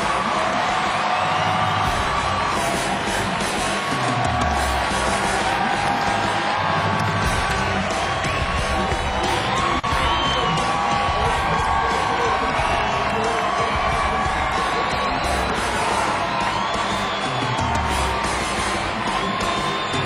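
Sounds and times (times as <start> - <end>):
crowd cheering and whooping: 0.0 - 20.0.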